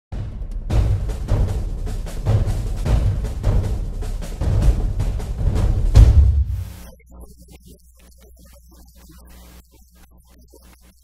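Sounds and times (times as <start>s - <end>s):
heavy drum and timpani hits: 0.2s - 6.9s
news theme music with drums: 0.2s - 6.9s.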